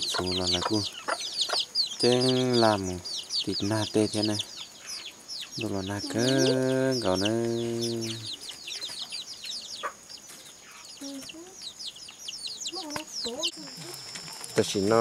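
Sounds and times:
chicks peeping: 0.0s - 15.0s
person talking: 5.6s - 8.3s, 12.8s - 14.0s.

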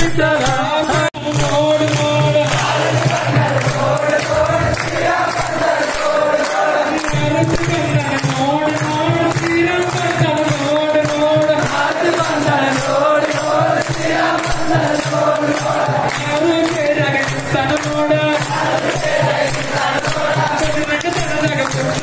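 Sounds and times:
men chanting together: 0.0s - 22.0s
percussion beat: 0.0s - 22.0s
rhythmic clapping: 0.0s - 22.0s.

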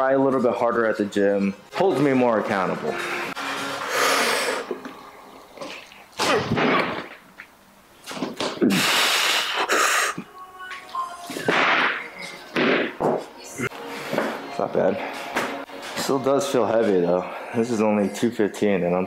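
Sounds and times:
weight plates landing on wood: 11.4s - 13.3s.

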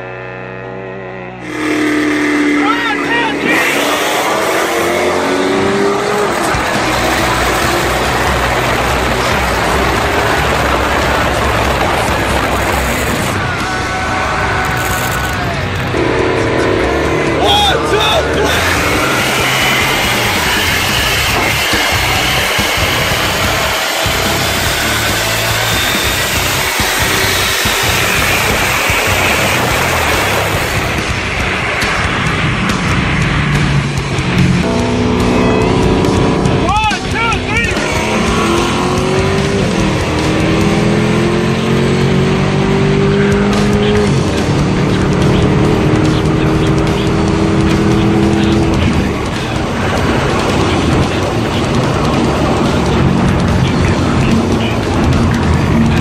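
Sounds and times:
car engine and road noise: 0.0s - 56.0s
people talking: 2.5s - 5.2s, 17.2s - 23.1s, 35.4s - 39.3s, 43.3s - 56.0s
music: 4.0s - 56.0s.

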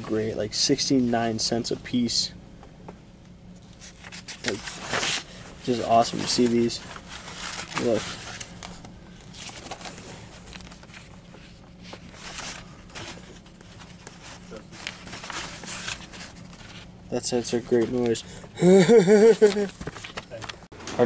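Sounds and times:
steady low hum: 0.0s - 21.0s
paper and plastic rustling: 3.8s - 18.2s, 19.3s - 21.0s.

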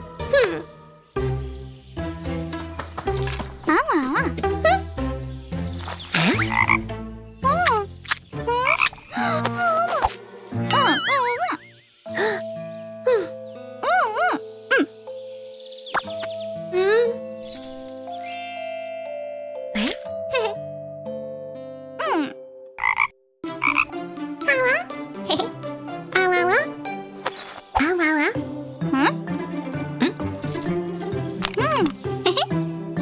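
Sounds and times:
soft background music: 0.0s - 33.0s
cartoon frog croaks: 6.2s - 9.2s, 22.0s - 24.0s.

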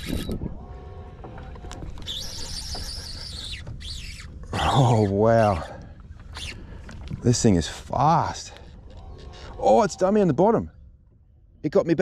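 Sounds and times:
fishing reel drag squealing: 0.0s - 0.4s, 1.8s - 6.6s.

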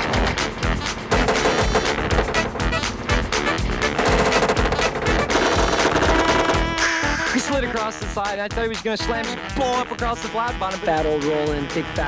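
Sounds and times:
held synth tones: 0.0s - 7.9s
rap beat with rapid drum hits: 0.0s - 12.0s.

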